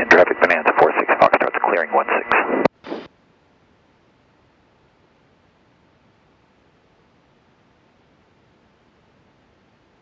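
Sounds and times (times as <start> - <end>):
faint steady audio hiss: 0.0 - 10.0.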